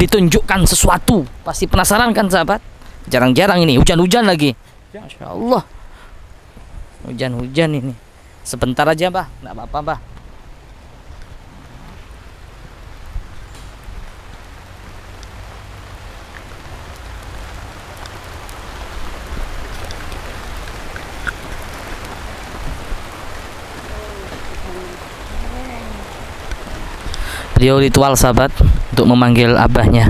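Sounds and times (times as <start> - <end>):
rain falling in steady hiss: 0.0 - 30.0.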